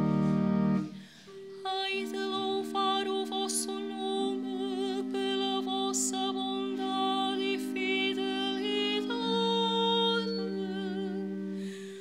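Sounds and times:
organ chords: 0:00.0 - 0:11.9
person singing with vibrato: 0:00.9 - 0:12.0.

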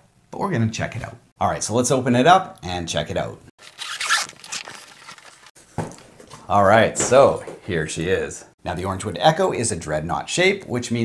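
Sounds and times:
zipper being pulled open: 0:03.6 - 0:05.5.

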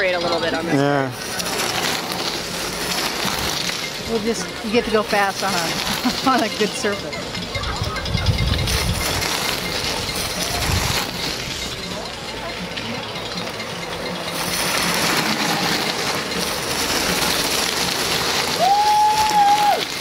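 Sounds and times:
bicycle tyres hissing over gravel: 0:00.0 - 0:07.1, 0:08.5 - 0:12.0, 0:14.2 - 0:20.0
wind rumble on microphone: 0:07.5 - 0:09.4.

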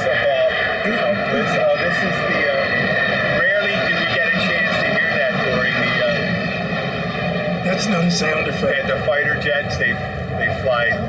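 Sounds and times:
voices: 0:00.0 - 0:02.8, 0:03.4 - 0:06.2, 0:07.6 - 0:11.0
fighter jet flying overhead: 0:00.0 - 0:11.0.

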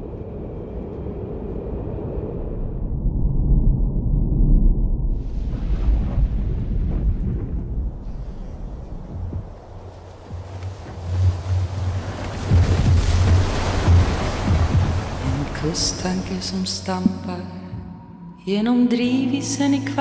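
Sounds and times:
deep low hum: 0:00.0 - 0:15.3
wind: 0:00.0 - 0:15.6
heavy low rumble: 0:00.0 - 0:19.8
sea water rushing: 0:08.1 - 0:17.4.

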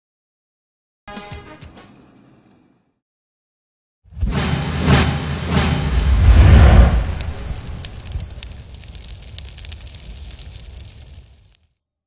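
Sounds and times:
deep rumble: 0:04.2 - 0:11.6
scattered crackles: 0:05.9 - 0:11.8.

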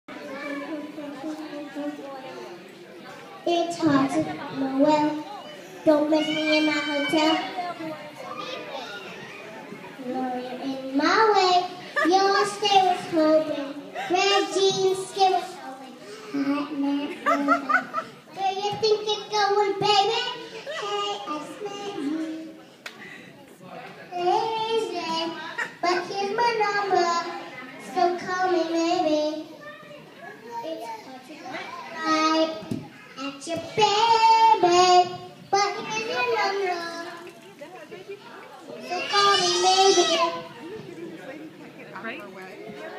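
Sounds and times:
children talking and playing: 0:00.0 - 0:42.9.

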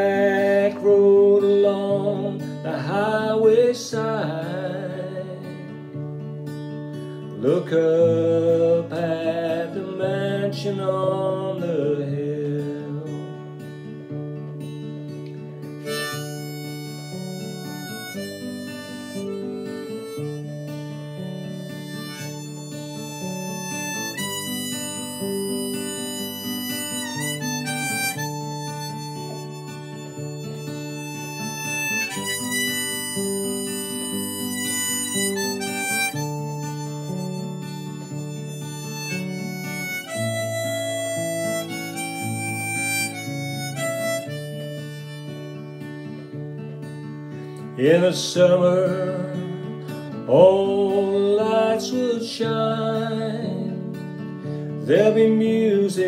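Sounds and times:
harmonica melody: 0:00.0 - 0:56.0
strummed acoustic guitar chords: 0:00.0 - 0:56.0.

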